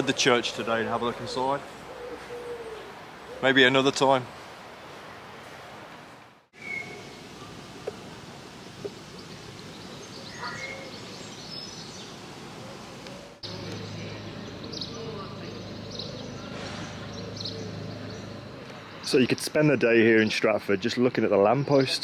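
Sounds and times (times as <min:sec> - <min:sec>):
outdoor background noise: 0:00.0 - 0:22.0
faint bird chirps: 0:06.6 - 0:07.5.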